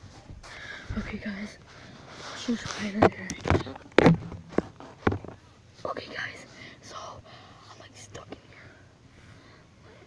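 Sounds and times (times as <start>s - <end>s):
sharp knock: 4.0s - 5.3s
person whispering: 5.8s - 8.6s.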